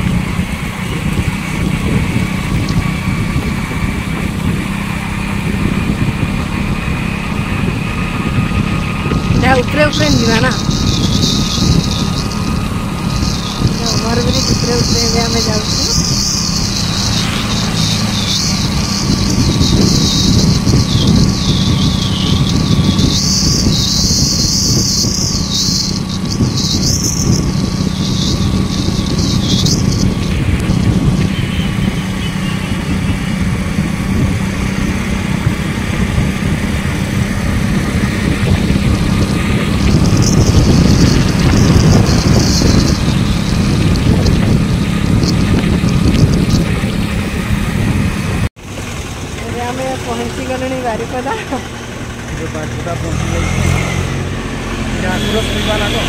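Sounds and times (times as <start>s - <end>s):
road and wind noise: 0.0s - 56.0s
vehicle engine drone: 0.0s - 56.0s.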